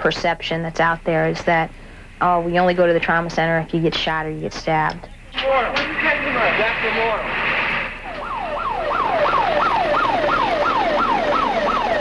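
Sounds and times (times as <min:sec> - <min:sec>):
emergency siren yelping: 0:08.0 - 0:12.0.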